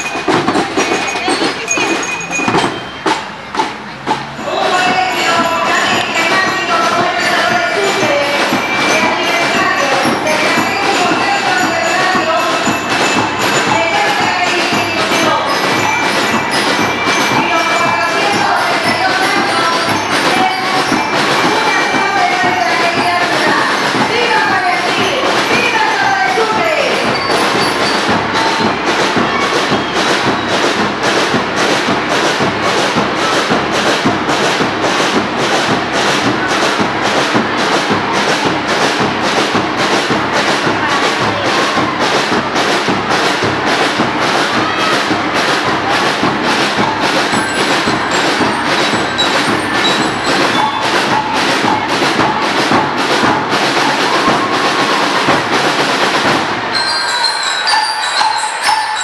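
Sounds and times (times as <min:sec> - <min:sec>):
drums beating: 0:00.0 - 0:59.0
marching band playing: 0:00.0 - 0:59.0.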